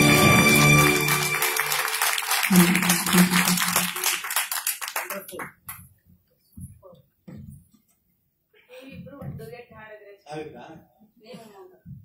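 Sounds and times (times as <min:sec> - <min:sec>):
audience applauding: 0:00.0 - 0:05.7.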